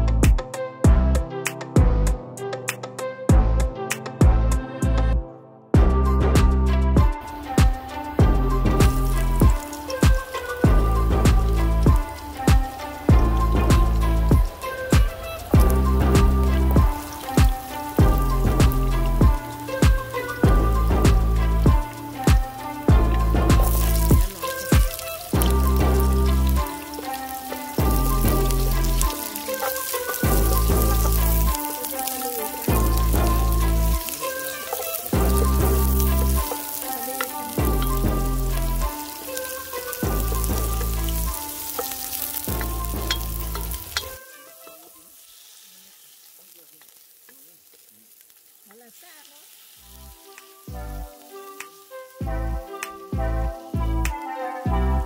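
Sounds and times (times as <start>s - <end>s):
music with bass beat: 0.0s - 5.2s, 5.8s - 44.2s, 49.9s - 55.0s
onion and garlic sizzling in oil: 6.0s - 55.0s
wooden spoon stirring: 23.6s - 44.2s.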